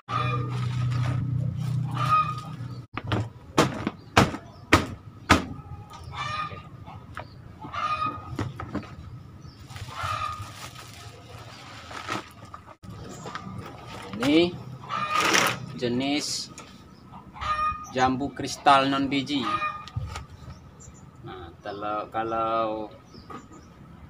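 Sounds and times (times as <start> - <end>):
chicken calls: 0.0 - 0.6, 1.7 - 2.9, 5.4 - 9.0, 9.6 - 11.4, 14.6 - 15.6, 17.0 - 20.3
chickens clucking: 0.1 - 0.5, 1.7 - 2.8, 5.6 - 9.0, 9.8 - 10.5, 16.9 - 20.6
sharp knocks: 3.0 - 5.6.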